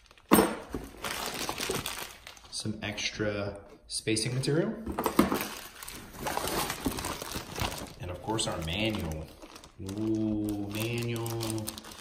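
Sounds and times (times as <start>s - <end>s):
plastic bag crinkling: 0.0s - 2.7s, 5.3s - 12.0s.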